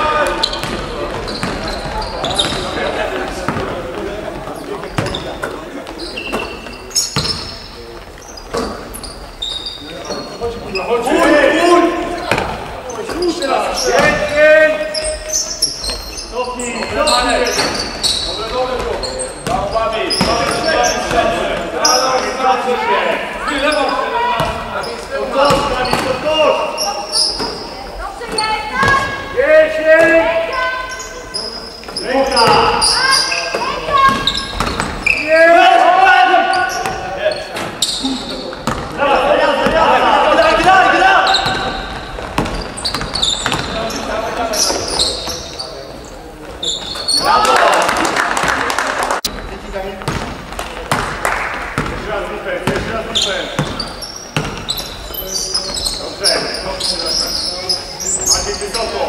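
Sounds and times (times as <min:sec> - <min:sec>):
players calling out: 0:00.0 - 0:49.4
basketball bouncing on wooden floor: 0:00.2 - 0:03.7, 0:33.9 - 0:35.0, 0:38.6 - 0:38.9, 0:41.4 - 0:43.8, 0:50.0 - 0:51.2, 0:53.6 - 0:53.8, 0:54.4 - 0:54.8.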